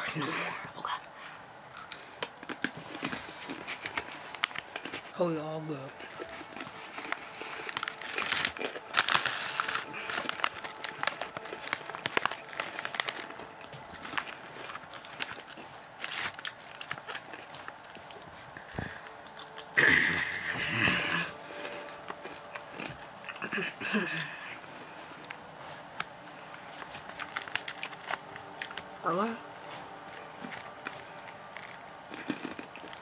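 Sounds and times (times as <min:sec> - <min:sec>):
crunching chips: 0:01.7 - 0:33.0
snack bag rustling: 0:01.7 - 0:33.0.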